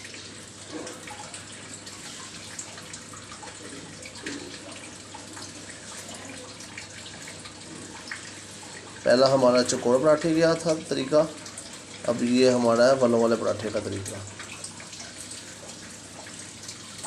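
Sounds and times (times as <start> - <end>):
kitchen background hiss: 0.0 - 17.0.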